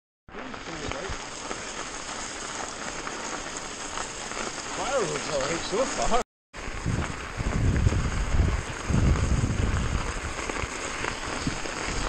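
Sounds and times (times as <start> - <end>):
bike tyres rolling on snow: 0.3 - 12.0.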